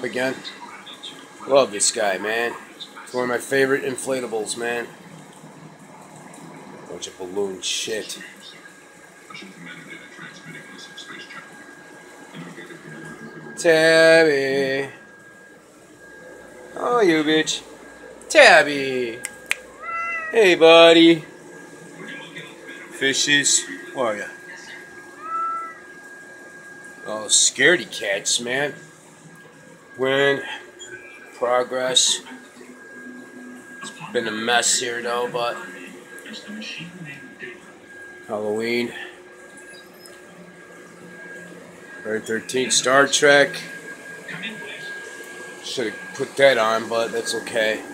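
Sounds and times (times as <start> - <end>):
blower fan hissing air: 0.0 - 47.9
cat meowing: 19.7 - 20.4, 25.2 - 25.8.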